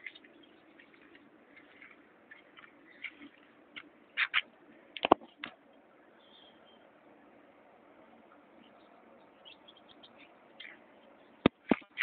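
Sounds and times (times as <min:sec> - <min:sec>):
terns calling: 0:00.0 - 0:04.5, 0:06.0 - 0:07.0, 0:08.3 - 0:12.0.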